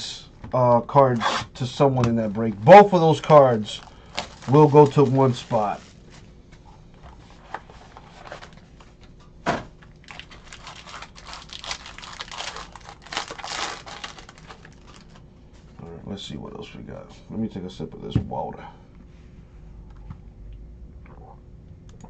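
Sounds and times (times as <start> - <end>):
plastic wrapping crinkling and tearing: 3.7 - 5.8, 9.8 - 15.2.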